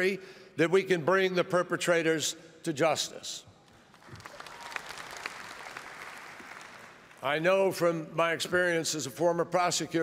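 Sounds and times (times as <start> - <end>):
audience applause: 3.9 - 7.2.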